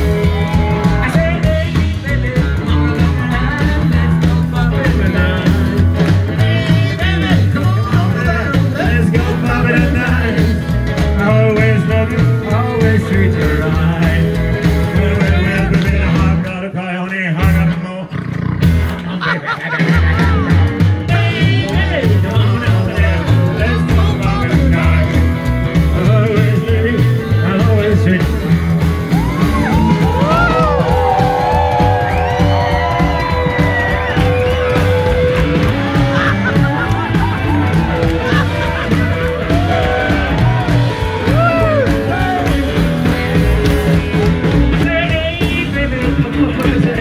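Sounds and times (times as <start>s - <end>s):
rockabilly band playing: 0.0s - 47.0s
upright bass beat: 0.0s - 47.0s
excited voices calling out: 29.0s - 43.6s
loud vocal yell: 29.1s - 43.0s.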